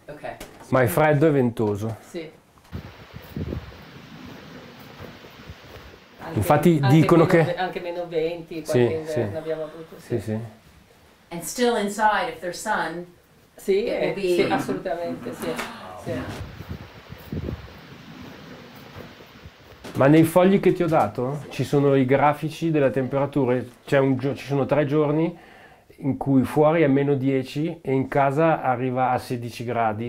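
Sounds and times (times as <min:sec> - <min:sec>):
low background hiss: 0:00.0 - 0:30.0
person speaking: 0:06.2 - 0:07.6, 0:08.5 - 0:10.7, 0:13.9 - 0:17.6.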